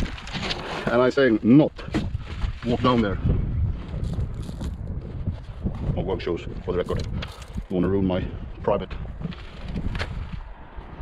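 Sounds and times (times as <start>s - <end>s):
wind buffeting microphone: 1.6s - 11.0s.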